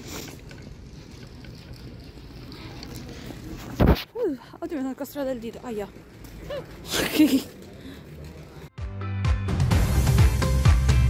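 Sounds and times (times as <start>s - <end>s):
faint street ambience: 0.0s - 8.8s.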